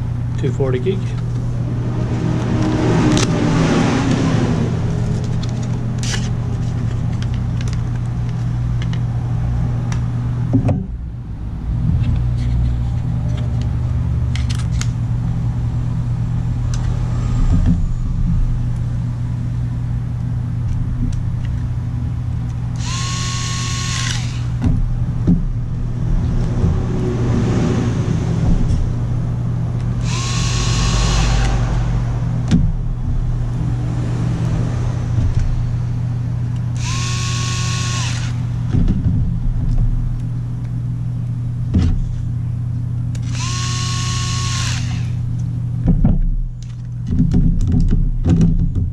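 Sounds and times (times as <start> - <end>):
low hum: 0.0 - 48.9
electric screwdriver motor whine: 22.8 - 24.6, 30.0 - 31.5, 36.8 - 38.5, 43.2 - 45.2.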